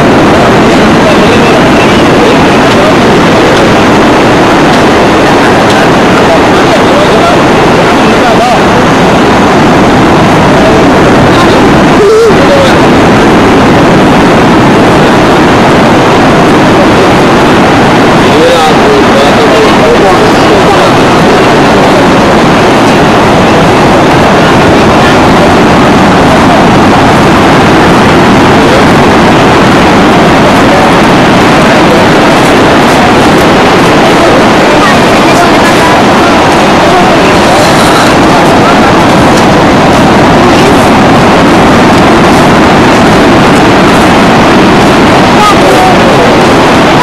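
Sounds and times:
indistinct voices: 0:00.0 - 0:47.0
sea surf roaring: 0:00.0 - 0:47.0.

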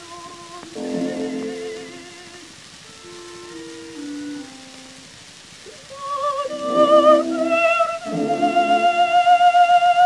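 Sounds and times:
instrumental accompaniment: 0:00.0 - 0:05.2
record surface hiss and crackle: 0:00.0 - 0:10.0
soprano singing: 0:00.0 - 0:10.0.

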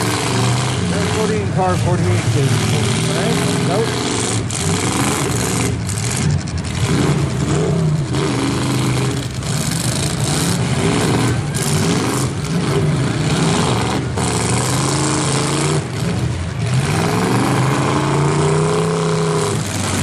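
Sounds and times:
car engines revving: 0:00.0 - 0:20.0.

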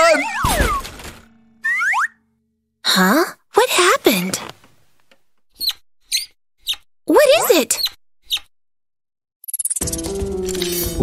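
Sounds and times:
high-pitched cartoon squeaks: 0:01.6 - 0:02.2, 0:05.6 - 0:06.8.

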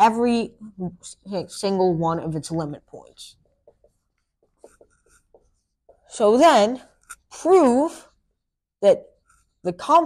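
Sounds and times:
marker writing on whiteboard: 0:03.3 - 0:06.4, 0:09.1 - 0:09.6.

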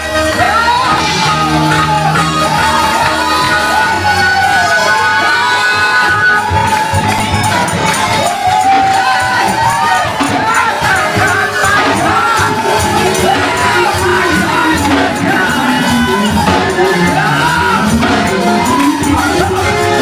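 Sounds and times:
congregation shouting and singing: 0:00.0 - 0:20.0
slowed gospel music: 0:00.0 - 0:20.0.

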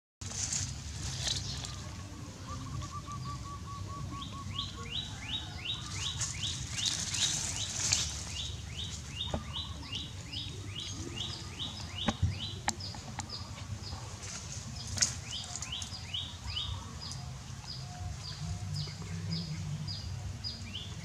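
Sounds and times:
bird calling descending notes: 0:02.0 - 0:05.7.

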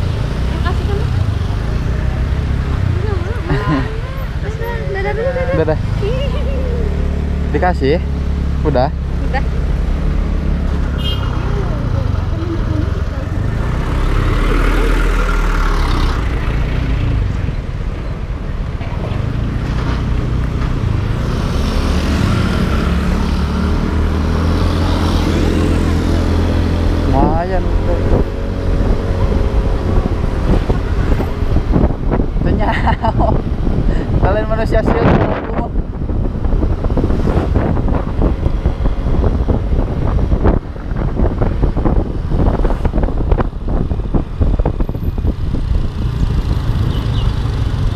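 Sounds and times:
wind noise on microphone: 0:24.1 - 0:47.9.

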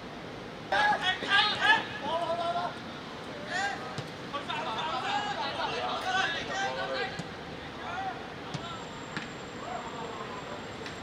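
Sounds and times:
footballers shouting: 0:00.7 - 0:02.8.

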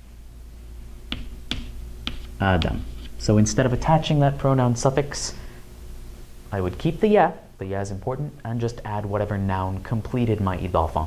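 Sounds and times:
low steady hum: 0:00.0 - 0:11.0
chalk tapping on chalkboard: 0:01.1 - 0:03.9.

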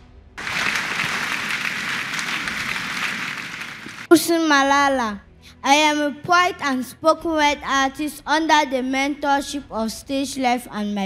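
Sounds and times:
audience applauding: 0:00.4 - 0:04.1.

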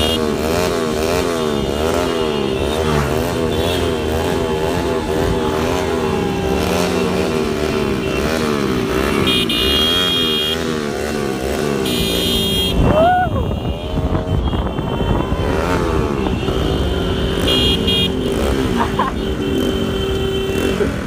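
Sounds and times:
motorcycle engines: 0:00.0 - 0:21.0.

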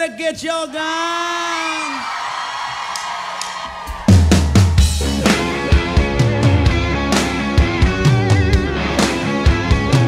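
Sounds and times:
rock band playing: 0:03.8 - 0:10.0.

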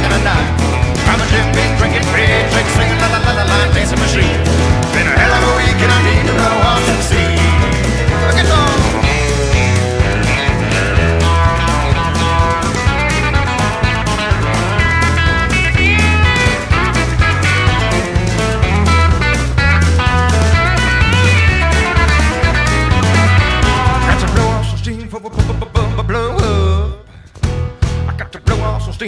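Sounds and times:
drum beat: 0:00.0 - 0:24.7
electric guitar lead: 0:00.0 - 0:24.8
bass line: 0:00.0 - 0:29.0.

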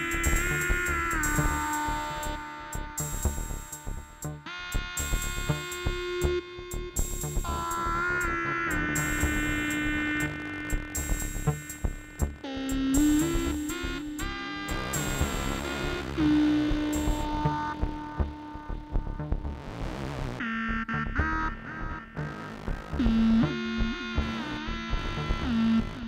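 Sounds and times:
electronic synthesizer music: 0:00.0 - 0:26.0.

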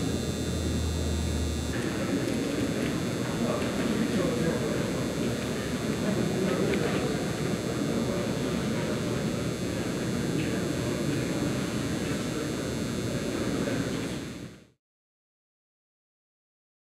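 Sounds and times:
low room rumble: 0:00.0 - 0:03.3.

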